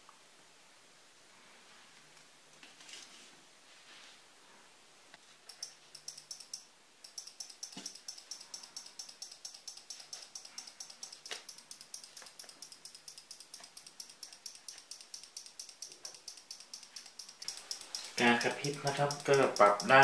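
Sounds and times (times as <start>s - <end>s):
relay clicking rapidly: 5.5s - 20.0s.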